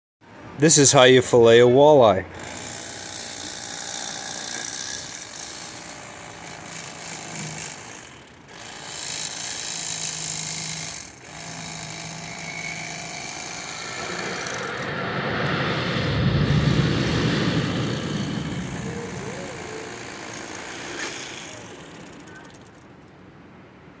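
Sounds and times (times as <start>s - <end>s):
electric fillet knife buzzing: 2.4s - 14.9s, 16.6s - 22.9s.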